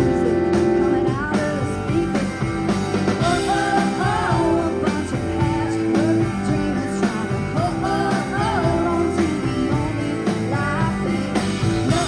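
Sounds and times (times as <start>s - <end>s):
live country band playing: 0.0s - 12.0s
sliding melody line: 0.0s - 12.0s.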